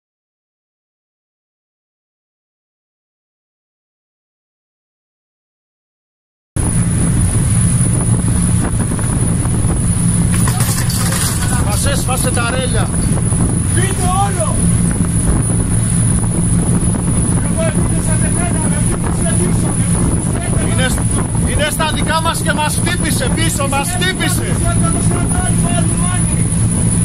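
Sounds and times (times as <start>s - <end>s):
boat engines droning: 6.6s - 27.0s.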